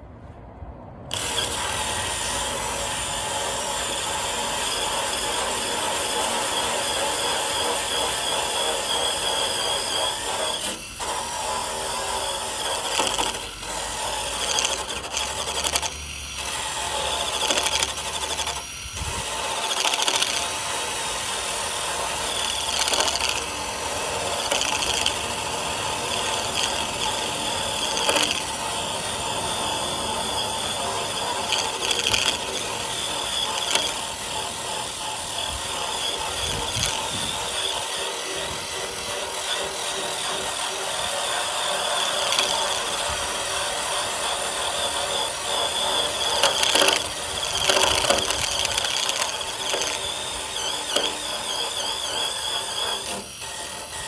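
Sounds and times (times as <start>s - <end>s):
drill scraping metal: 1.1s - 54.0s.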